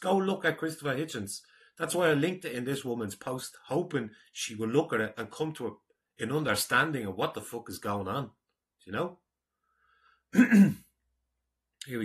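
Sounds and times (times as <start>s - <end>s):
man clearing his throat: 10.3s - 10.9s.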